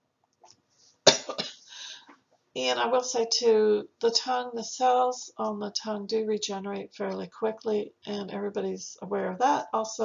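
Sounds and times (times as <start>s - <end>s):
woman coughing: 1.1s - 1.7s.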